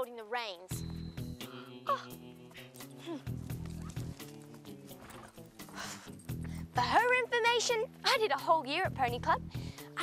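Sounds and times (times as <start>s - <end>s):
girl humming hmm: 1.4s - 2.3s
hoof knocks: 2.9s - 6.7s.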